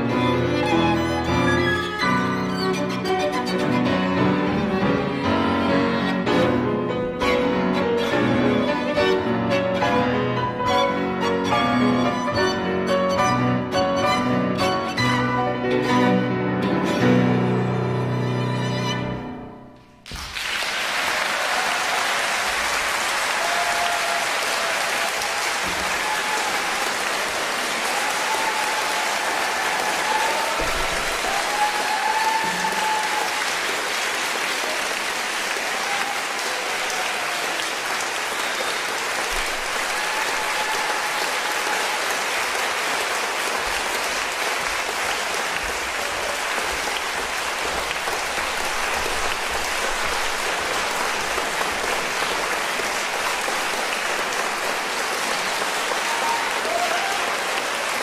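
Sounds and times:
audience applauding: 0.0s - 6.6s, 20.0s - 58.0s.

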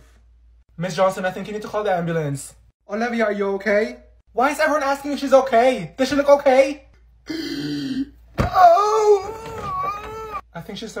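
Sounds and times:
person wailing cry: 7.3s - 10.4s.

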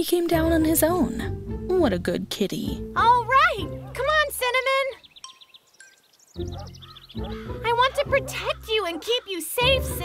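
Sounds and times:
soft background music: 0.0s - 10.0s
child's voice: 3.0s - 5.0s, 7.6s - 10.0s
high twittering chirps: 4.5s - 9.6s.

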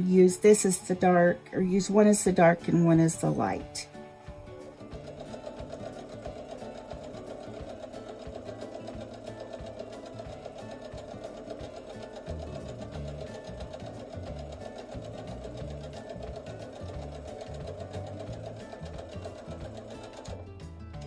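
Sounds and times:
sewing machine stitching: 4.3s - 21.0s.

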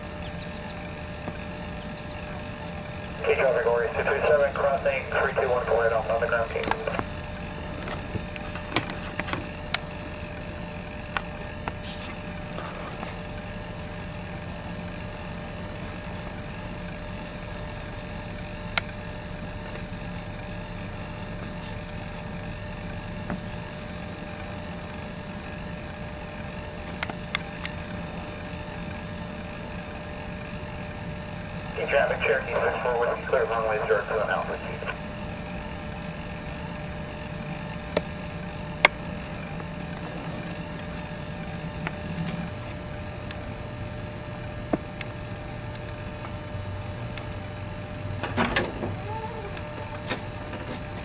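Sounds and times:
insects chirping: 0.0s - 5.0s, 5.9s - 32.0s, 34.8s - 41.9s
steady low hum: 0.0s - 51.0s.

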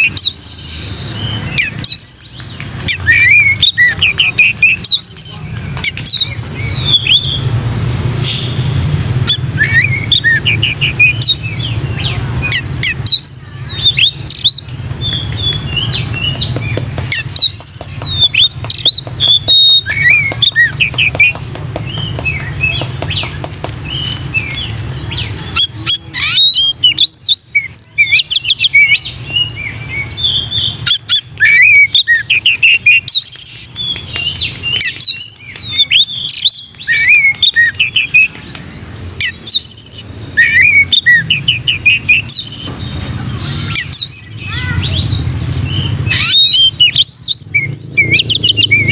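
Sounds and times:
bird singing whistled notes: 8.2s - 21.3s, 23.9s - 42.8s.

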